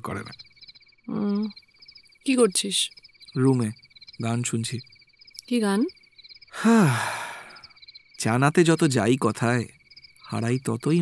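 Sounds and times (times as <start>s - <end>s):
crickets chirping: 0.0s - 11.0s
person sighing: 6.6s - 7.6s.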